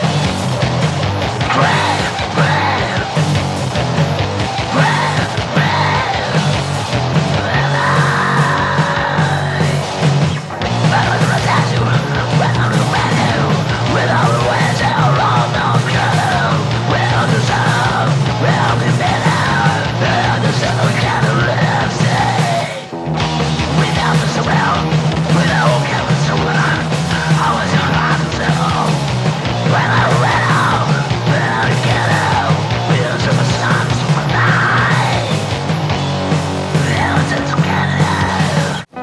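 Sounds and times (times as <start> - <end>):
distorted band playing: 0.0 - 39.0
screamed vocal: 1.4 - 3.2, 4.5 - 6.6, 7.3 - 10.0, 10.8 - 22.9, 29.6 - 39.0.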